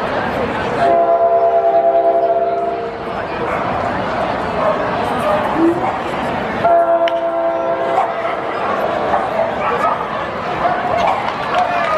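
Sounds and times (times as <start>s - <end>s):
crowd voices: 0.0s - 11.9s.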